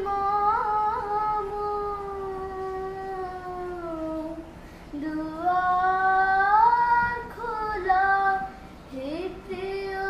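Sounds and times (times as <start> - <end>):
girl singing unaccompanied: 0.0 - 10.0.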